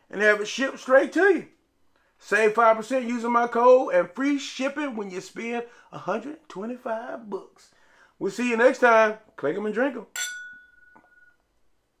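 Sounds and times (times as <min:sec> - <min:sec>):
glasses clinking: 0:10.2 - 0:11.4.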